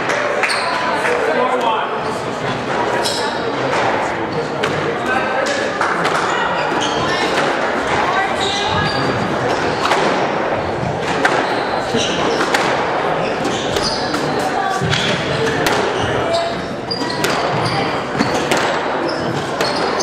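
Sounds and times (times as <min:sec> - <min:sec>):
shoes squeaking on court floor: 0:00.4 - 0:01.0, 0:02.9 - 0:03.6, 0:06.0 - 0:10.0, 0:10.8 - 0:20.0
squash ball striking racquets and walls: 0:02.6 - 0:20.0.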